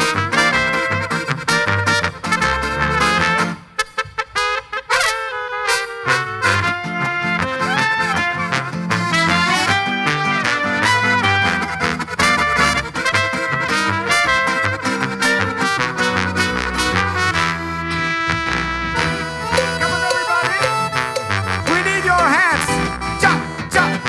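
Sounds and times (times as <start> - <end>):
brass and folk band playing: 0.0 - 24.0
clarinet: 0.0 - 24.0
trumpet: 0.0 - 24.0.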